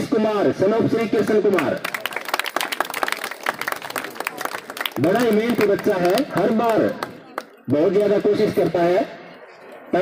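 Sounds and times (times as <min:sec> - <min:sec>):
crowd applauding: 0:01.6 - 0:08.1.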